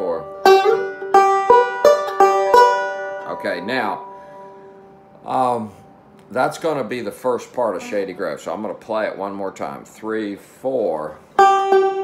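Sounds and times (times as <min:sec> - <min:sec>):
banjo notes ringing: 0:00.0 - 0:10.0, 0:10.8 - 0:12.0.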